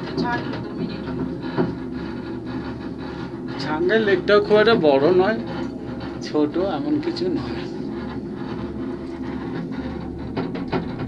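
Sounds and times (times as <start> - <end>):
cable car knock: 0.0 - 2.8, 9.0 - 11.0
cable car running rumble: 0.0 - 11.0.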